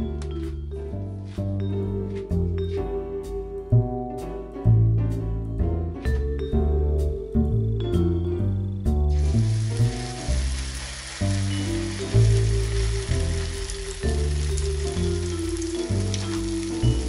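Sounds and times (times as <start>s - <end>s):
background music: 0.0s - 17.0s
batter sizzling in hot oil: 9.1s - 17.0s.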